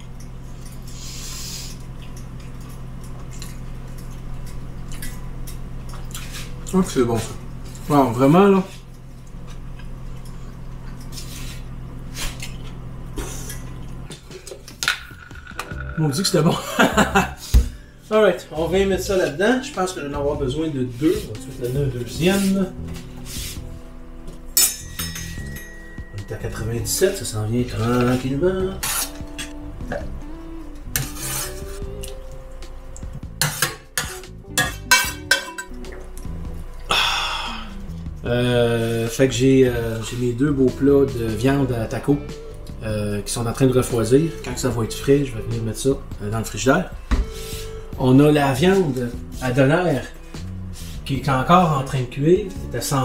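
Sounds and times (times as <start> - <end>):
appliance electrical hum: 0.0 - 53.0.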